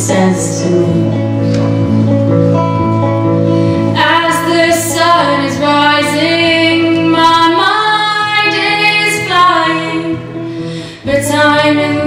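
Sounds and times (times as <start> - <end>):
woman singing: 0.0 - 1.4, 3.9 - 10.3, 11.0 - 12.0
electric guitar chords: 0.0 - 12.0.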